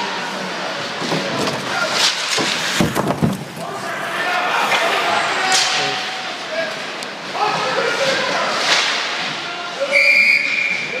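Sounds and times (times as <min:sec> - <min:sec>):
players' voices: 0:00.0 - 0:11.0
skates scraping ice: 0:00.8 - 0:10.0
referee's whistle blast: 0:09.9 - 0:11.0.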